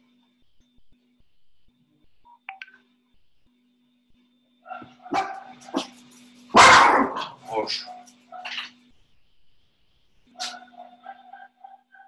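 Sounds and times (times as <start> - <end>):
faint steady hum: 0.0 - 12.0
dog barking: 4.7 - 8.6, 10.4 - 12.0.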